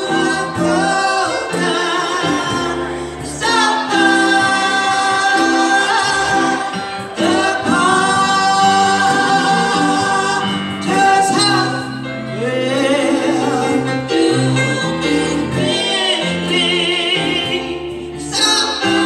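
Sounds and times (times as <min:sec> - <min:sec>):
gospel group singing: 0:00.0 - 0:19.0
instrumental backing: 0:00.0 - 0:19.0.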